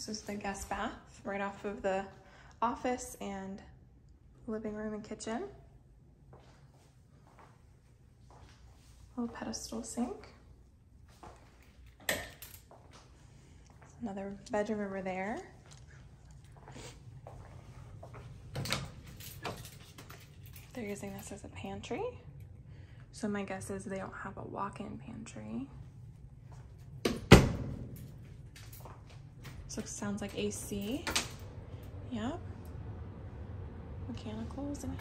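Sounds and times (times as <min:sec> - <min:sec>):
faint low hum: 0:00.0 - 0:35.0.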